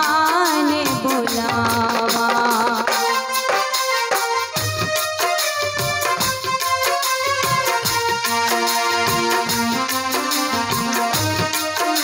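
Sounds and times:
electronic keyboard melody: 0.0 - 12.0
low drum beats: 4.6 - 9.8.

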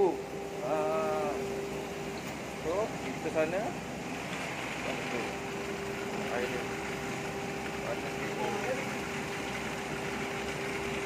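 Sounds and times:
steady mechanical hum: 0.0 - 11.0.

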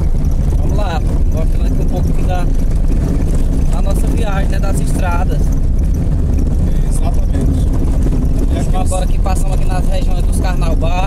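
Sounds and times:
car rumbling on dirt road: 0.0 - 11.0.

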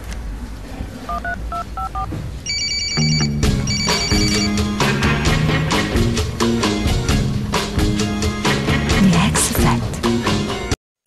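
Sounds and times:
phone keypad dialing beeps: 1.2 - 4.5
electronic ringtone trilling: 1.2 - 4.6
background music: 3.0 - 10.8.

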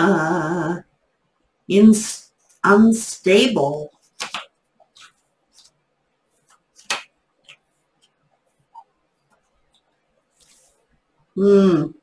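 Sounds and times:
cards rustling: 4.0 - 5.8, 6.4 - 8.2
card swishing: 4.1 - 5.8, 6.4 - 7.7.

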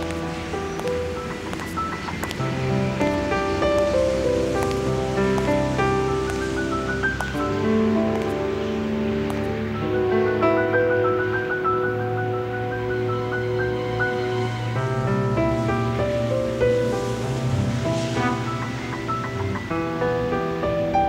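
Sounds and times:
faint steady rush: 0.0 - 21.0
slow background music: 0.0 - 21.0.

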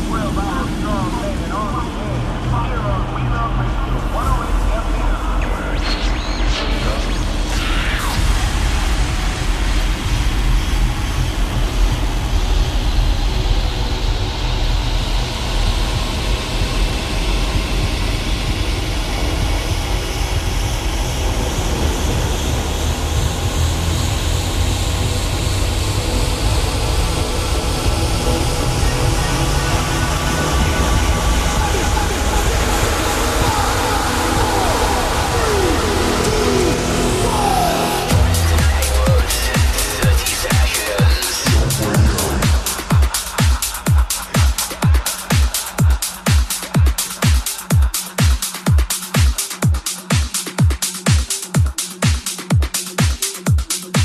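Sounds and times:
low bass: 0.0 - 48.0
electronic build with rising sweep: 0.0 - 54.0
kick-drum beat: 8.1 - 54.0.

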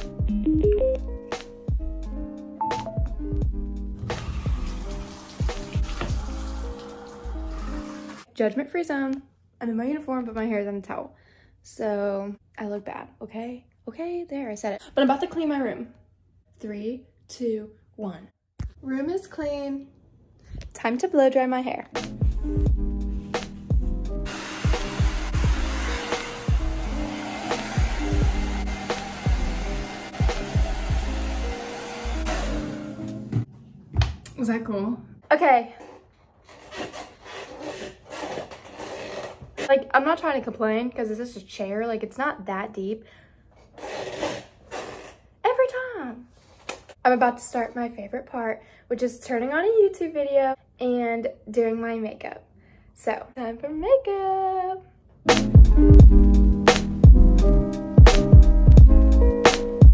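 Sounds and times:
background music with a beat: 0.0 - 6.4, 22.0 - 31.2, 55.3 - 59.9
shower running: 3.9 - 8.3, 24.2 - 32.7
hair dryer blowing: 24.2 - 33.0.

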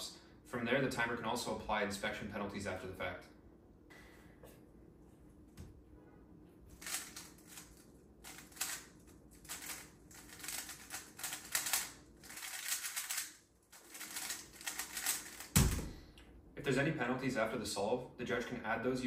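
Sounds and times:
puzzle cube clicking and rattling: 6.8 - 15.6
cube set down thump: 15.5 - 16.0.

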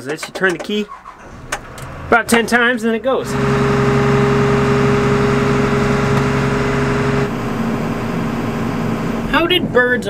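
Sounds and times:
engine cranking: 0.0 - 9.3
diesel engine idling: 0.8 - 10.0.

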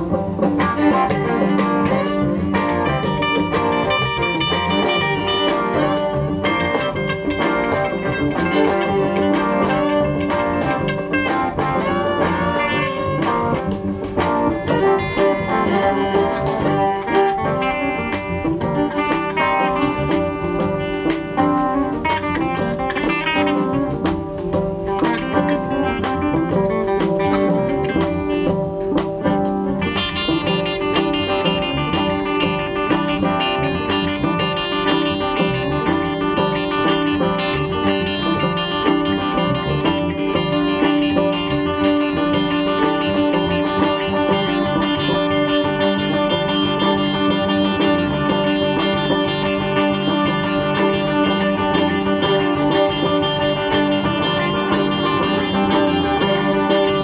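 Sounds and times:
blues band playing: 0.0 - 57.0
electric guitar: 0.0 - 57.0.

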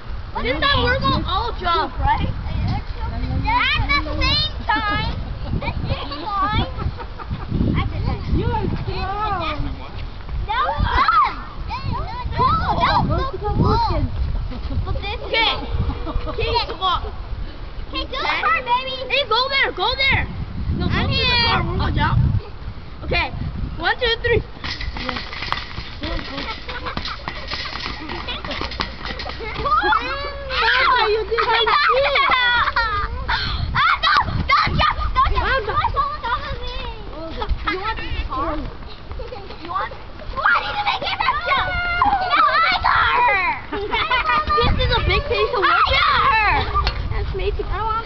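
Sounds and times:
children shrieking and laughing: 0.4 - 9.4, 10.5 - 20.2, 25.9 - 48.0.

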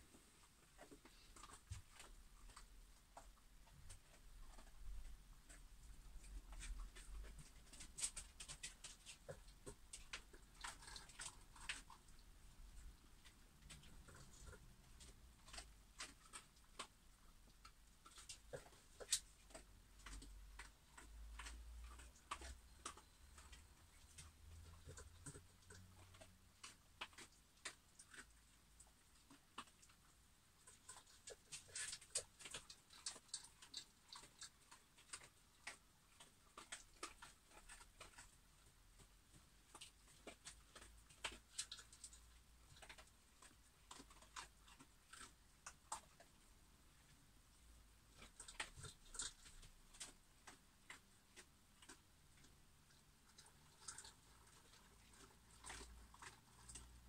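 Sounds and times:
dogs eating clicks: 0.8 - 57.0.

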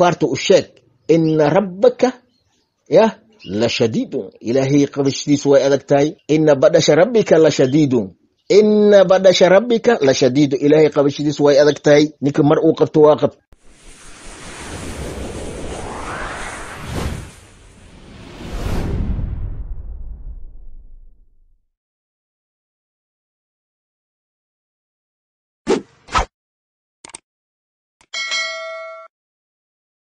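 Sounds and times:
rising sweep: 13.6 - 21.1
whoosh rushing noise: 13.6 - 21.1
bright bell ding: 28.1 - 29.1.

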